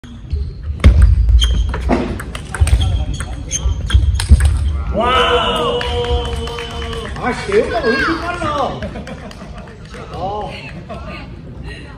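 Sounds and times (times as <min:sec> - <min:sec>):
table tennis ball clicking: 0:02.2 - 0:04.6.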